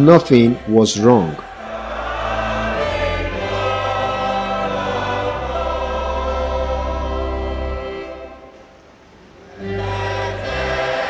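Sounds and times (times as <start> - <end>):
slow choral music: 0.0 - 11.0.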